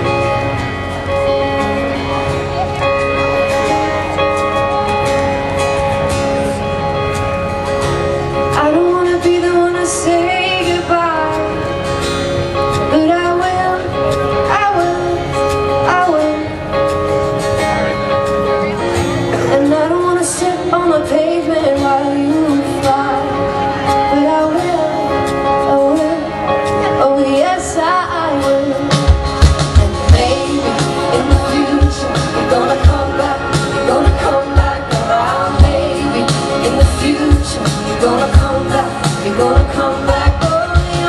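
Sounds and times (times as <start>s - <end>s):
held guitar chords: 0.0s - 41.0s
live band playing pop song: 0.0s - 41.0s
woman singing: 8.5s - 11.6s, 12.8s - 16.6s, 19.3s - 41.0s.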